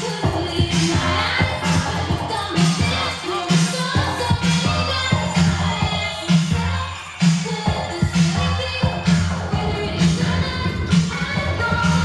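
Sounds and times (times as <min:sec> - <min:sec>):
loud dance music: 0:00.0 - 0:12.0.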